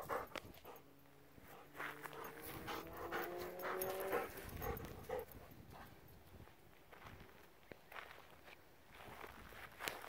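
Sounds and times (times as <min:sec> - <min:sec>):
dog panting: 0:00.0 - 0:06.0.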